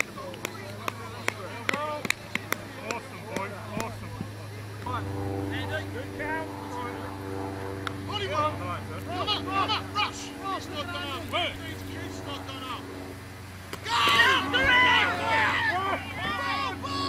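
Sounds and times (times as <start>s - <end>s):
players shouting and calling: 0.0s - 7.2s, 7.8s - 17.0s
steady engine hum: 0.0s - 17.0s.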